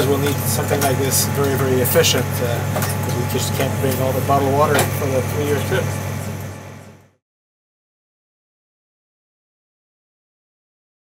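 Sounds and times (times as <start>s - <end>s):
machinery and ventilation hum: 0.0s - 7.2s.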